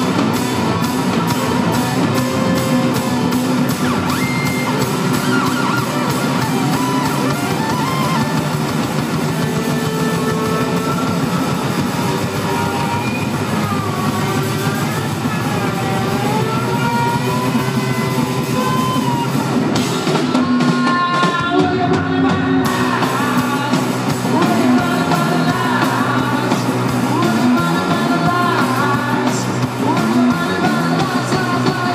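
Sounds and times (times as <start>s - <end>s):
electric guitar bending notes: 0.0s - 20.5s
rock band playing: 0.0s - 31.9s.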